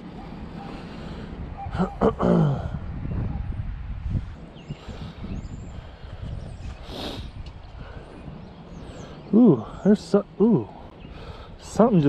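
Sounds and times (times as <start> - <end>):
wind buffeting microphone: 0.0 - 12.0
man clearing throat: 1.8 - 2.8.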